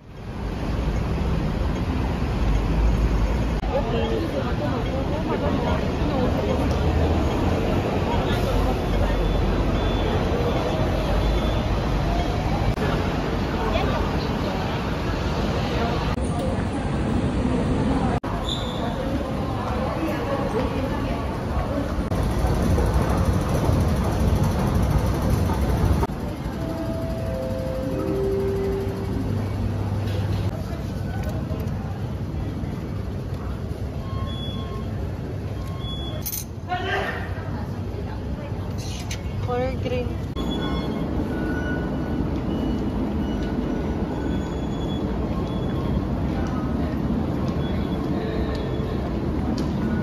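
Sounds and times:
metro station rumble and hum: 0.0s - 50.0s.

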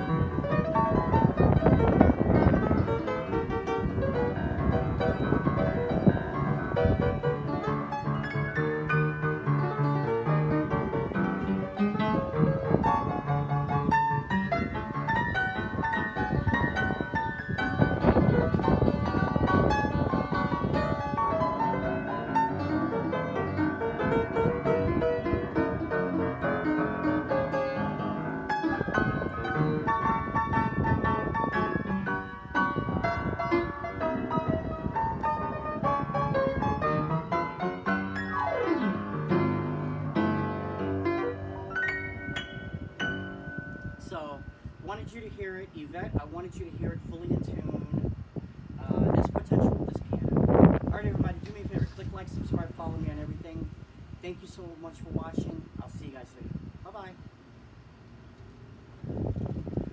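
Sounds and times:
upright piano playing: 0.0s - 48.1s.

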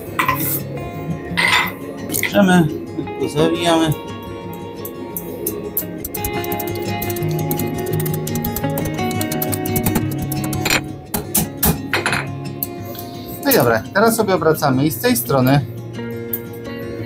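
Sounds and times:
background music: 0.0s - 17.0s.

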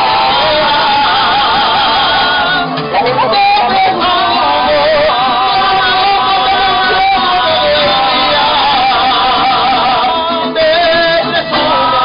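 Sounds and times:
acoustic guitars playing: 0.0s - 12.0s
wavering melody with vibrato: 0.0s - 12.0s.

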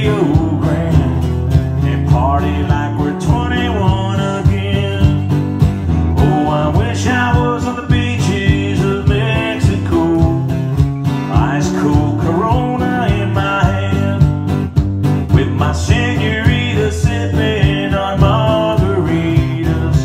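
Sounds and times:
acoustic guitar strumming: 0.0s - 20.0s.

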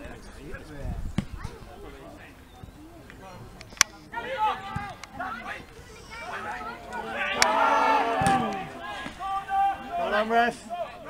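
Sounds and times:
distant players shouting: 2.4s - 11.0s.

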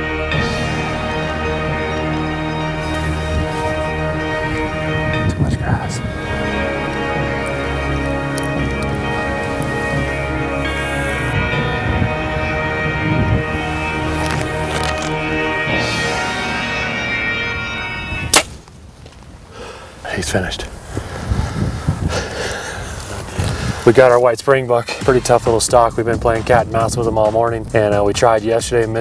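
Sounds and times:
music with sustained tones: 0.0s - 18.5s
compound bow shot crack: 18.3s - 18.8s.

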